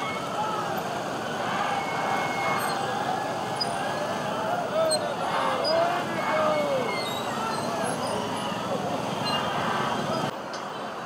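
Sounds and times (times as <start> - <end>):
people calling out: 0.0 - 10.3.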